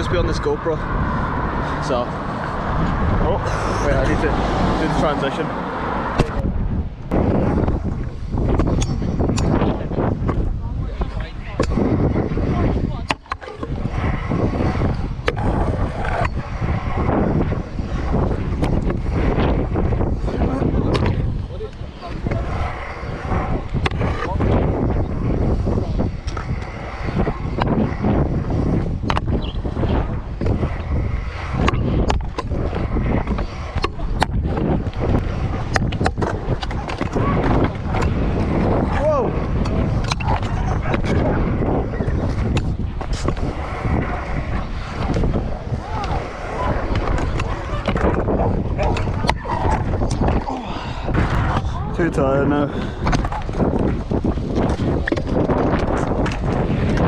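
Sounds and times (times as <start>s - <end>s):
scooter wheels rolling on concrete: 0.0s - 57.0s
wind rumbling on microphone: 0.0s - 57.0s.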